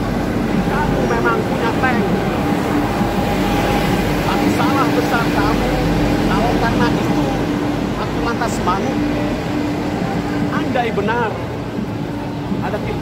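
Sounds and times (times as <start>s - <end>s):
street noise: 0.0s - 13.0s
people talking: 0.6s - 9.4s, 10.1s - 11.5s, 12.6s - 13.0s.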